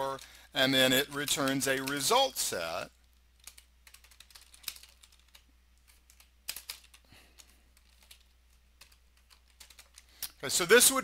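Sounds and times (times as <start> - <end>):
computer keyboard typing: 3.1 - 10.1.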